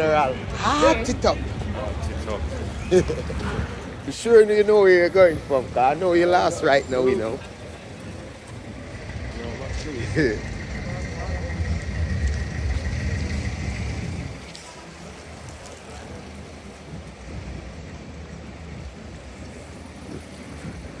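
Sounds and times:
vehicles passing on wet street: 0.0 - 21.0
person laughing: 2.8 - 3.5.

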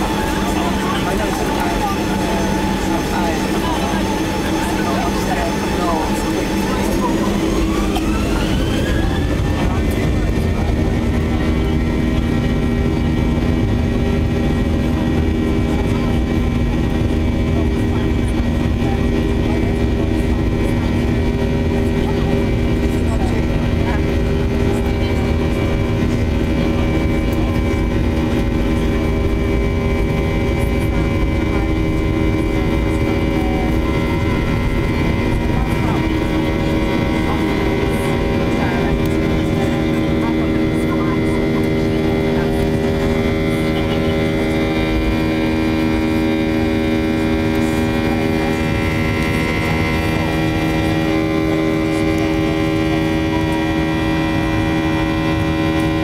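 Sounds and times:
deep engine rumble: 0.0 - 56.0
jet engine whine: 0.0 - 56.0.

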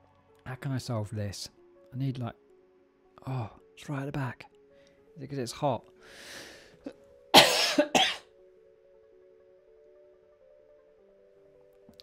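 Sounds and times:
man coughing: 7.4 - 8.3.

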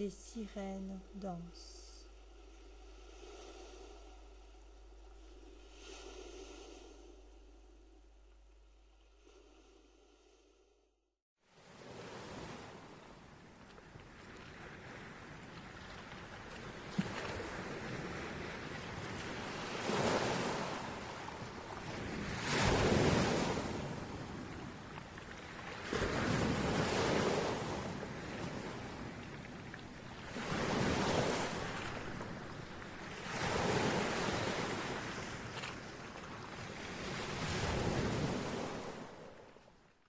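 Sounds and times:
sea waves breaking on shore: 0.7 - 7.9, 11.5 - 39.9.

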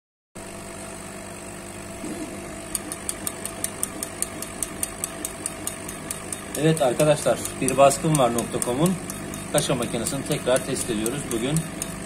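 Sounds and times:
engraving machine humming: 0.4 - 12.0
regular mechanical ticking: 2.7 - 12.0.

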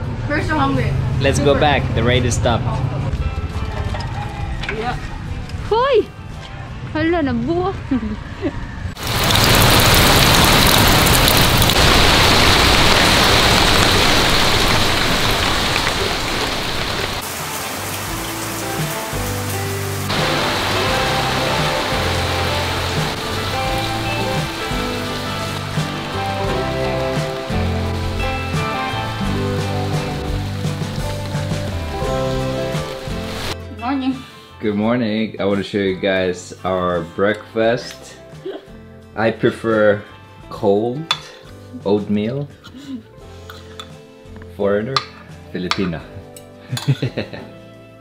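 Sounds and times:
heavy rain falling: 9.0 - 33.6
water running onto wet ground: 9.0 - 33.6
music with held notes and bass: 17.7 - 37.1, 45.3 - 48.0.

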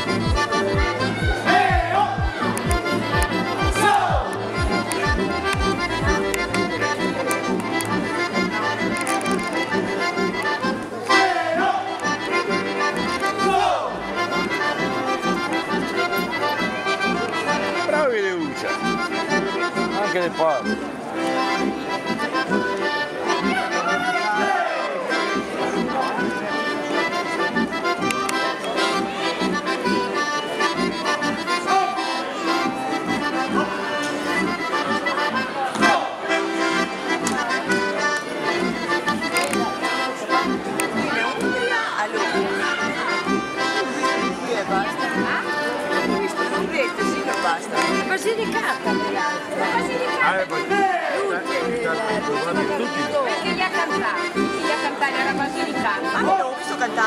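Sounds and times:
accordion folk dance tune: 0.0 - 57.0.

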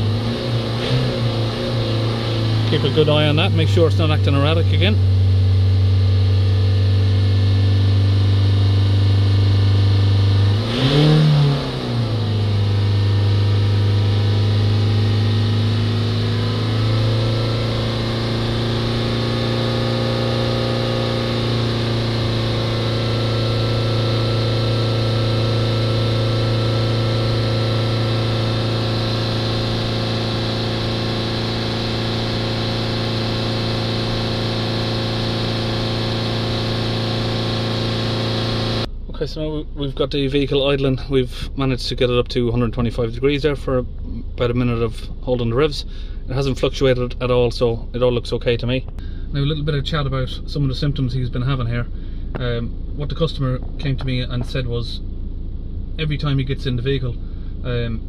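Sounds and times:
diesel engine revving: 0.0 - 42.0.

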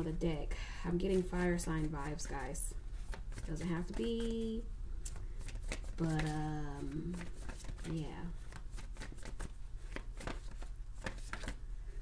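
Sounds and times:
cards being shuffled: 1.1 - 11.6.

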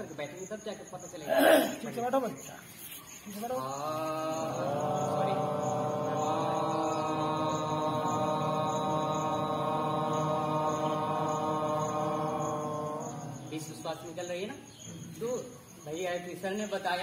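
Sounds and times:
chanted om: 3.3 - 14.1.

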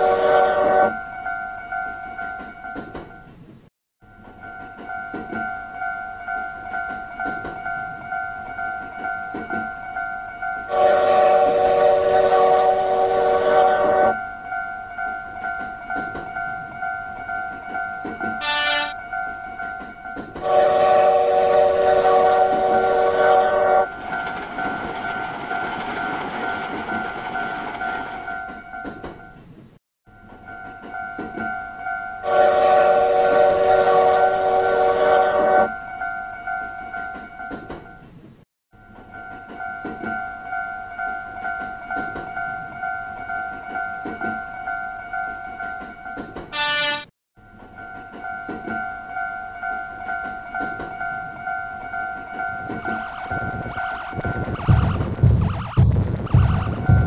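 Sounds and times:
train horn blasts: 0.0 - 1.0, 10.7 - 14.2, 18.4 - 19.0, 20.4 - 23.9, 32.2 - 35.7, 46.5 - 47.1
railroad crossing bell dinging: 0.0 - 3.4, 4.0 - 29.4, 30.1 - 38.1, 38.8 - 54.5
train rushing by: 20.4 - 29.1, 52.2 - 57.0.

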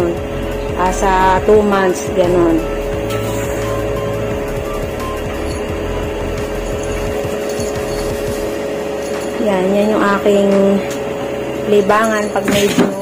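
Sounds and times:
sustained two-note chord: 0.0 - 8.9.

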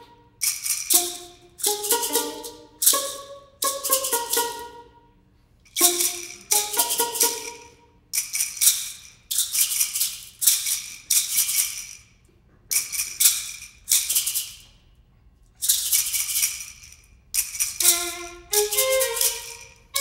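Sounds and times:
rattle shaking: 0.4 - 4.8, 5.6 - 14.8, 15.6 - 20.0
held pitched note: 0.9 - 5.0, 5.8 - 7.7, 17.8 - 20.0.

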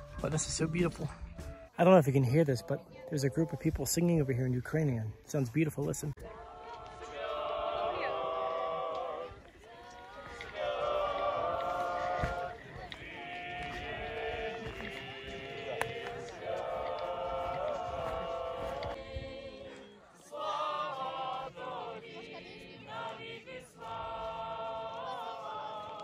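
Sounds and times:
group of people singing: 6.2 - 26.0.

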